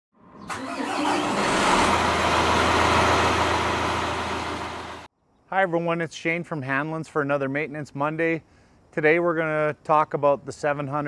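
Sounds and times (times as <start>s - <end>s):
engine starting and idling: 0.4s - 5.1s.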